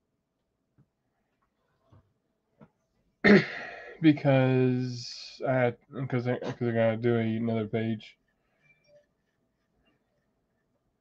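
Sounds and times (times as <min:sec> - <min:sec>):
man coughing: 0:03.2 - 0:04.0, 0:06.1 - 0:06.9.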